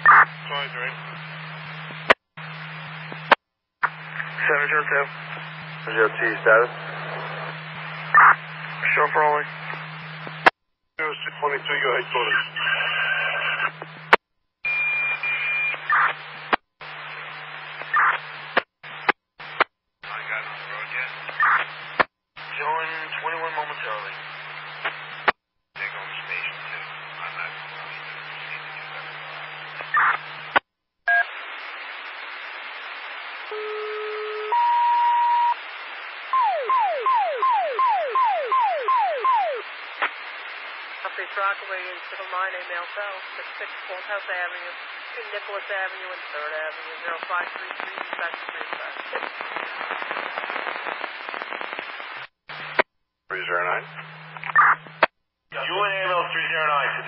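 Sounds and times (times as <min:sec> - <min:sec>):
radio voice transmissions: 0:00.0 - 0:01.9, 0:02.6 - 0:14.1, 0:18.9 - 0:30.6, 0:35.6 - 0:54.9, 0:55.5 - 0:57.0
dispatch alert tones: 0:36.4 - 0:39.6.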